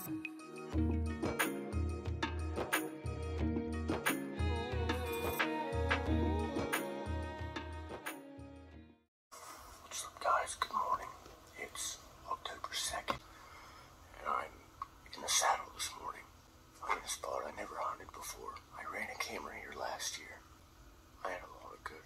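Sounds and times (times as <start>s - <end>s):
person whispering: 9.8s - 13.2s, 14.1s - 20.4s, 21.2s - 22.0s.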